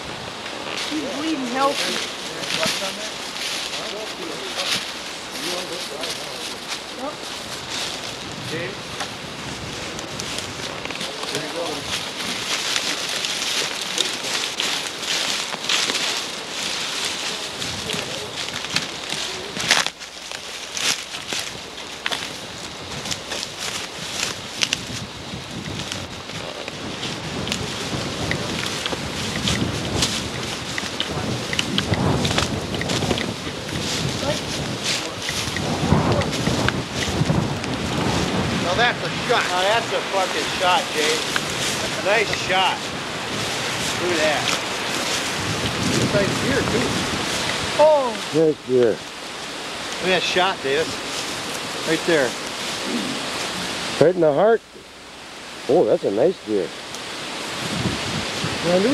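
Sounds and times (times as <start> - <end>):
footsteps crunching through dry leaves: 0.0 - 54.3.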